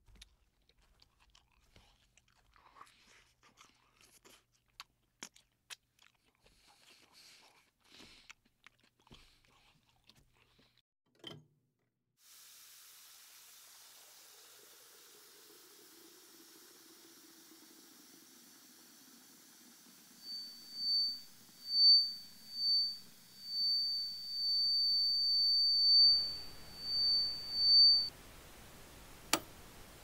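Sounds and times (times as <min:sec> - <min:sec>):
faint running tap water: 0:12.2 - 0:20.6
pulsing high-pitched electronic tone: 0:20.2 - 0:28.1
static hiss: 0:26.0 - 0:30.0.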